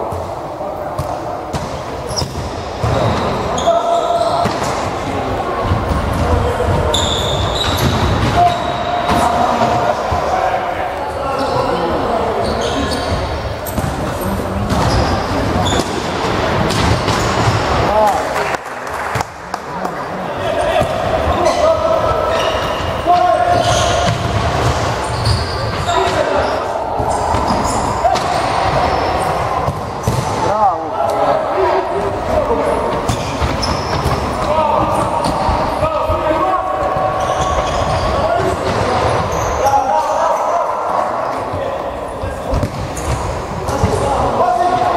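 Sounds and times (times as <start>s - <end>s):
players shouting: 20.2s - 33.0s.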